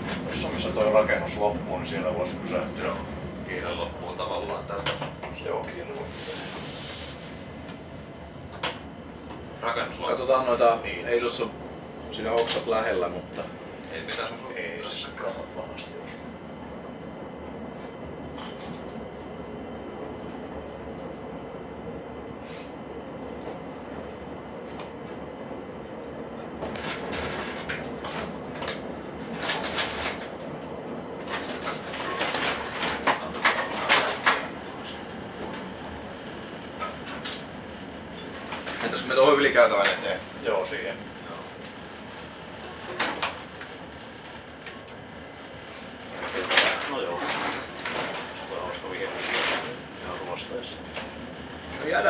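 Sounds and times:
diesel railcar engine drone: 0.0s - 52.0s.

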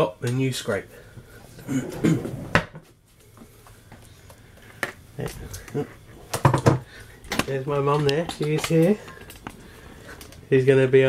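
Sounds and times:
person coughing: 1.6s - 2.3s.

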